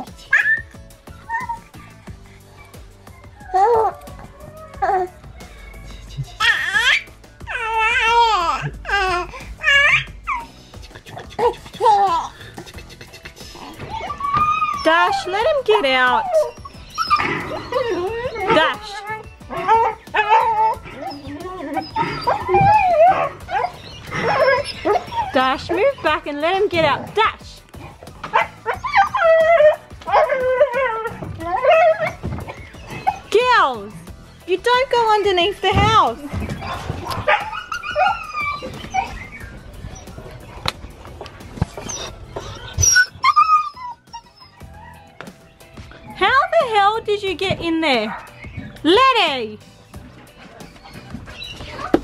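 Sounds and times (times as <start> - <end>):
puppy whining and yipping: 0.0 - 11.8, 13.4 - 26.1, 27.8 - 33.4, 35.7 - 46.3, 48.1 - 48.8, 50.0 - 52.0
huskies crying: 0.0 - 52.0.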